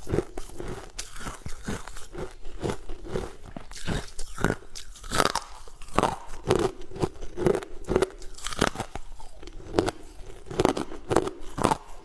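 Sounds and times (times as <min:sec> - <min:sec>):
crunching and chewing ice: 0:00.0 - 0:12.0.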